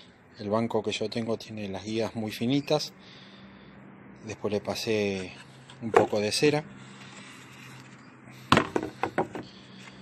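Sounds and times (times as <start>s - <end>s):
wooden pieces knocking: 8.5s - 9.5s.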